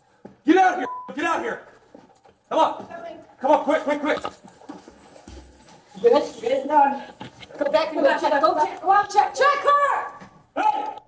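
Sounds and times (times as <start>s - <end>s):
person shouting: 9.6s - 11.0s.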